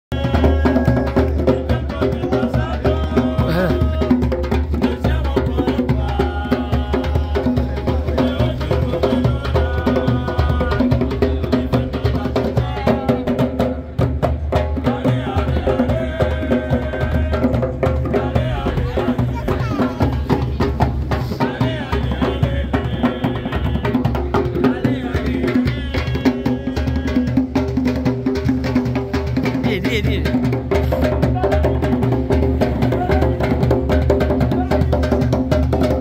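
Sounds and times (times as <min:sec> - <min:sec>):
djembe drums playing rhythm: 0:00.1 - 0:36.0
person's voice: 0:03.4 - 0:03.9, 0:18.9 - 0:20.0, 0:29.6 - 0:30.4.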